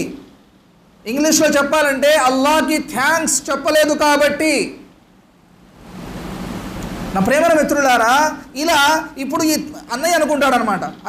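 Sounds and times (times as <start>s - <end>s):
soft even hiss: 4.4s - 9.9s.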